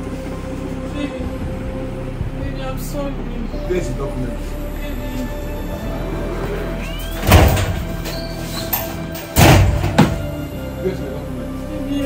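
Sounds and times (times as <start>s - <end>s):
background music: 0.0s - 12.0s
metal door banging open: 7.0s - 10.4s.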